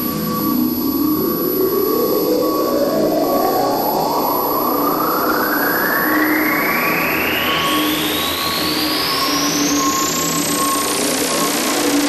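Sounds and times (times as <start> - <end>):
synthesizer noise sweep rising: 0.0 - 9.1.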